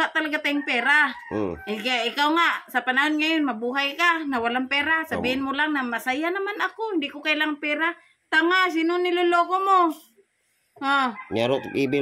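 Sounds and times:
rooster crowing: 0:00.4 - 0:02.3, 0:11.1 - 0:12.0.

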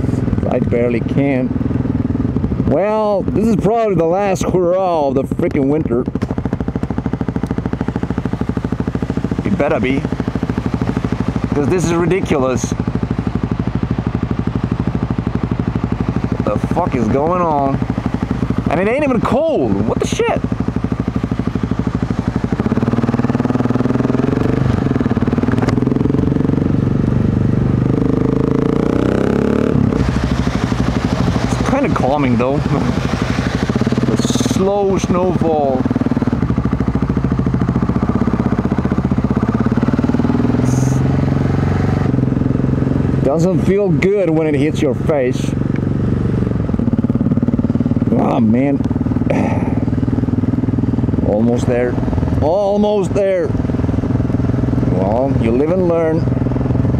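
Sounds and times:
motorcycle engine revving: 0:00.0 - 0:56.9.

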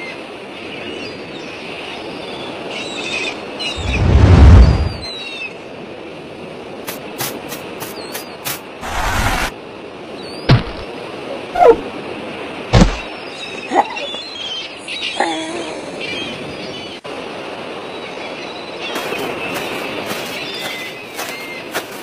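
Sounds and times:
faint bird-like chirps: 0:17.9 - 0:21.8.

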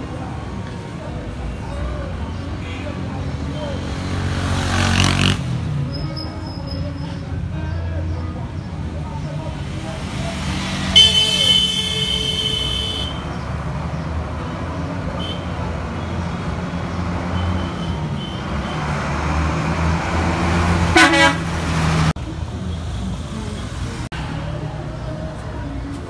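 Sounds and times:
vehicle engines running: 0:00.0 - 0:26.0.

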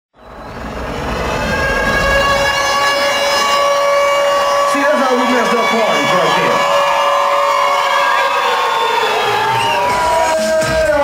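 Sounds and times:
long held electronic tone: 0:00.2 - 0:09.1.

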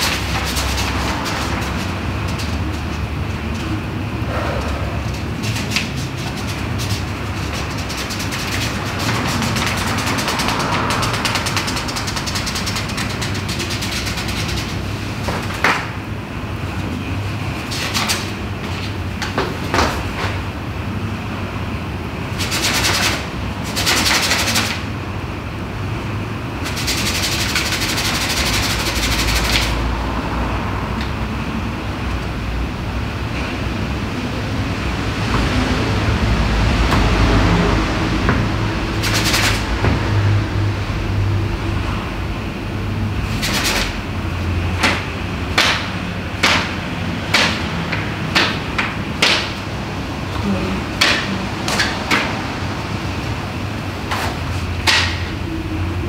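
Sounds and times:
sharp knocks: 0:44.8 - 0:49.6.

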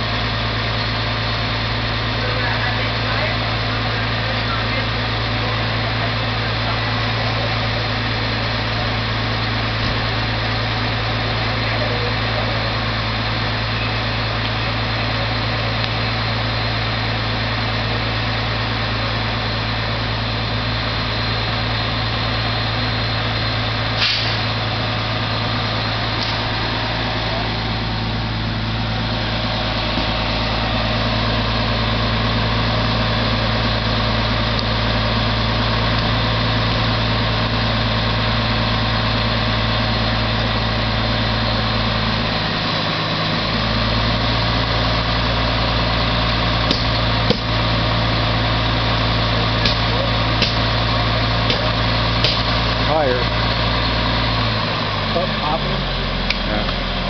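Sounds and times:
fire engine idling: 0:00.0 - 0:57.0.

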